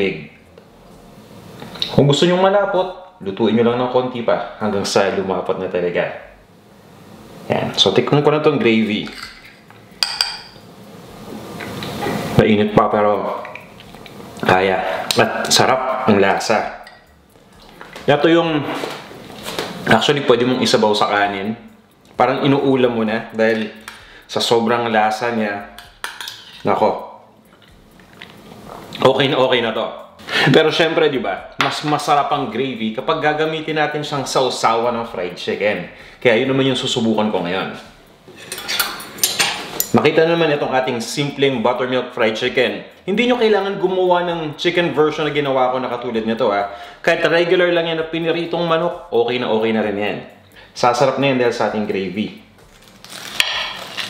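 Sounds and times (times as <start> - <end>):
soft hiss: 0.0 - 54.0
spoon clinking on glass bowl: 9.0 - 10.6
cutlery clinking and scraping plate: 25.8 - 26.7, 38.3 - 40.0.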